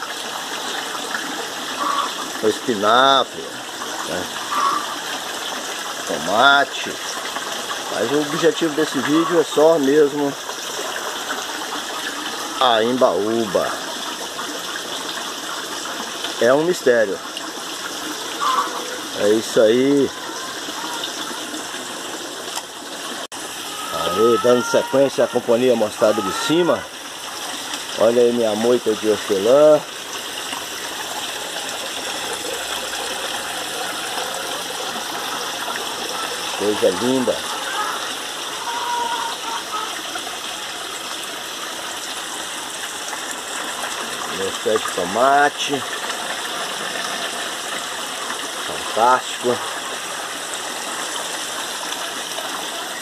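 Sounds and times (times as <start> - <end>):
water rushing: 0.0 - 53.0.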